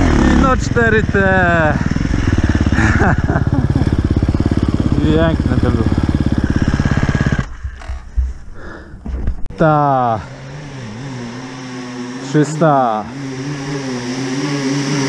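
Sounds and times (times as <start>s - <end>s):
motorcycle engine chugging: 0.0s - 8.8s.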